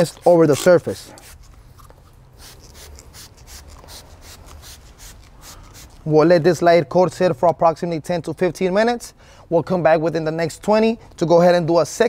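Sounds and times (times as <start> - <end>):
spray bottle spritzing: 0.1 - 6.1.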